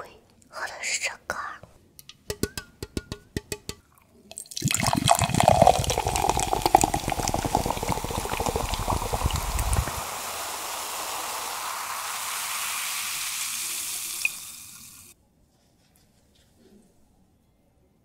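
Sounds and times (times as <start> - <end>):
taps on a can: 2.0 - 3.8
carbonated drink fizzing: 4.3 - 15.2.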